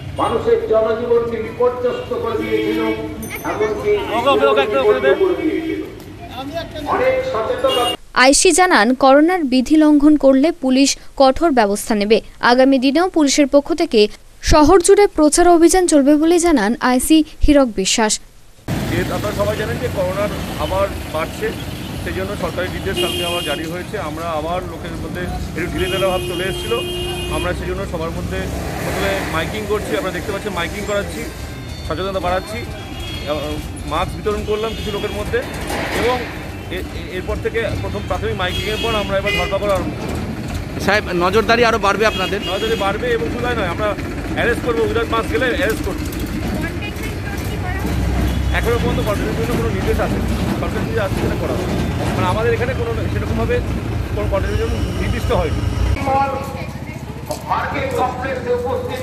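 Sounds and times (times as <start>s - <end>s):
street traffic noise: 0.0s - 13.6s, 18.5s - 59.0s
man talking: 0.2s - 8.0s, 18.9s - 40.0s, 40.8s - 46.1s, 48.5s - 56.5s, 57.3s - 59.0s
low engine rumble: 39.6s - 59.0s
people's voices: 40.8s - 59.0s.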